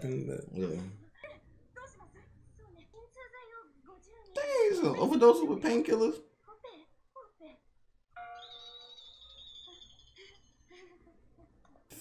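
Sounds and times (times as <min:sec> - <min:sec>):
faint dialogue: 0:00.0 - 0:07.8
sustained bell-like tone: 0:08.2 - 0:09.8.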